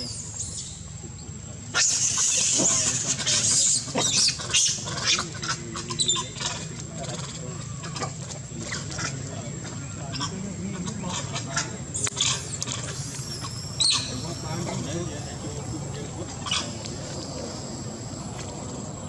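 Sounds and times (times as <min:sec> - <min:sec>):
monkeys calling shrilly: 0:00.0 - 0:01.0, 0:01.6 - 0:18.2.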